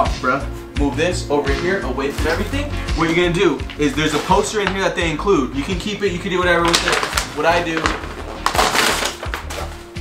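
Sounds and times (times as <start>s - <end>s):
background music: 0.0s - 10.0s
paper crumpling: 3.1s - 5.0s, 5.6s - 10.0s.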